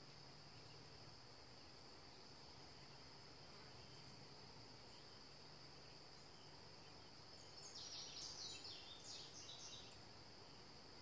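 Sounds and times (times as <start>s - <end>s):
high-pitched insect trill: 0.3s - 11.0s
bird chirps: 5.8s - 10.1s.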